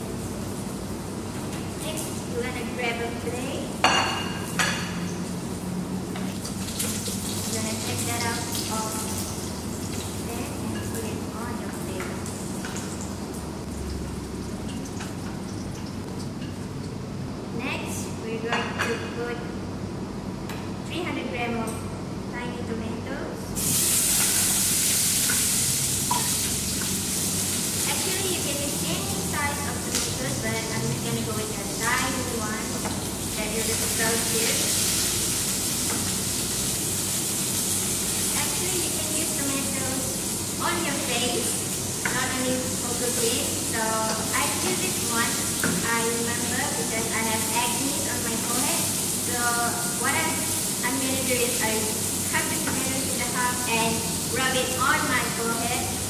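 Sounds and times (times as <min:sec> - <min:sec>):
oil sizzling in a saucepan: 0:00.0 - 0:16.7, 0:23.6 - 0:56.0
low steady hum: 0:00.0 - 0:23.6.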